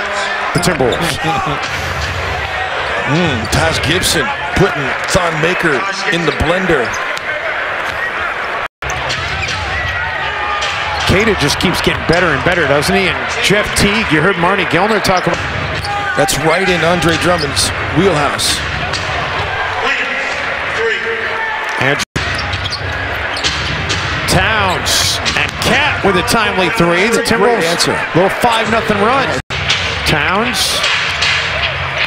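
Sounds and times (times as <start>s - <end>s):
court sounds: 0.0s - 32.0s
crowd noise: 0.0s - 32.0s.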